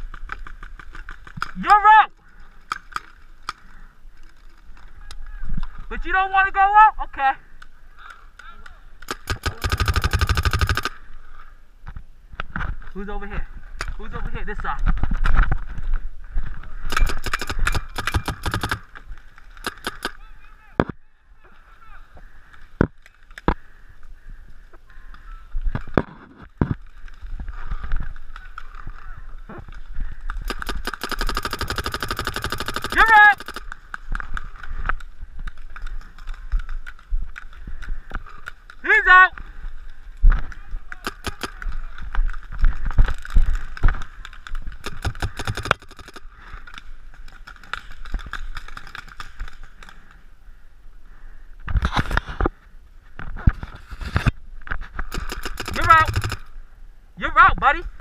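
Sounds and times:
distant shouts: 32.4 - 33.7, 38.8 - 39.6
paintball marker shots: 41.0 - 41.6, 44.8 - 46.2.

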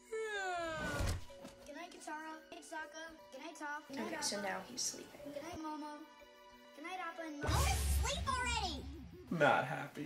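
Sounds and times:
boy yawning: 0.0 - 1.2
background music: 0.0 - 10.0.

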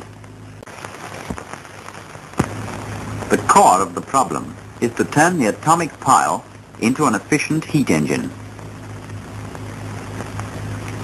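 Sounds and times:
film soundtrack hiss and crackle: 0.0 - 11.0
low hum: 0.0 - 11.0.

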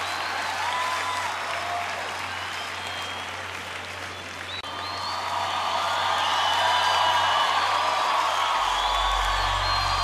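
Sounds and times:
crowd applause and cheering: 0.0 - 10.0.

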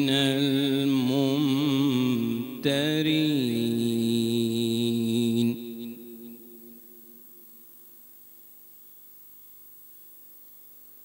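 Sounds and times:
man chanting recitation: 0.0 - 6.8
faint hum: 0.0 - 11.0.

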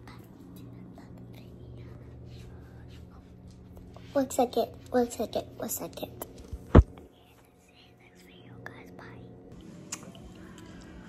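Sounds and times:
girl whispering: 0.0 - 3.4, 7.1 - 9.4.

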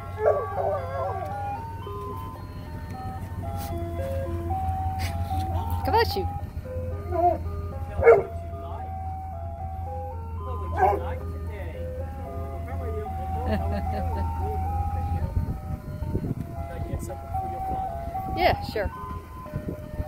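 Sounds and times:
ice cream truck jingle: 0.0 - 20.0.

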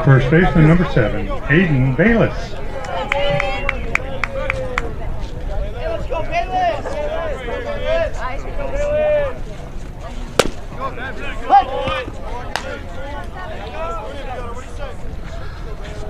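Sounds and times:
voices calling and chattering: 0.0 - 16.0
sharp pops: 10.4 - 10.6.

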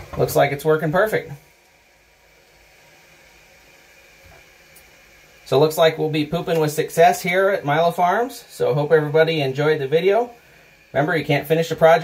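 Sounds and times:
toilet tank refilling hiss: 0.0 - 12.0.

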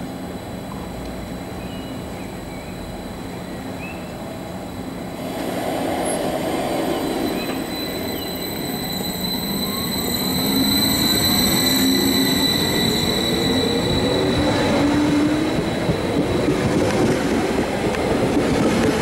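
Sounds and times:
electric train passing: 0.0 - 19.0
train drive whine: 0.0 - 19.0
steady high-pitched tone: 4.6 - 16.9.

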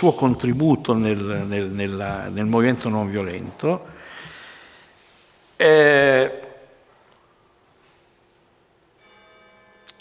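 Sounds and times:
faint bell-like ringing tone: 8.9 - 10.0.

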